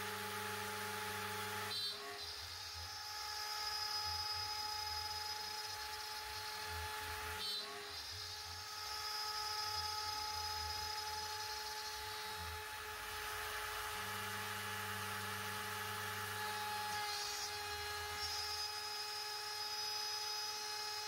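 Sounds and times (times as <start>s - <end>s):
router spindle cutting metal: 0.0s - 21.0s.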